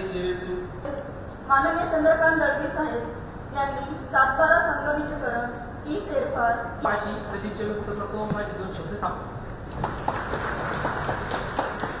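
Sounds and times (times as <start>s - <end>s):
audience applauding: 9.7s - 12.0s.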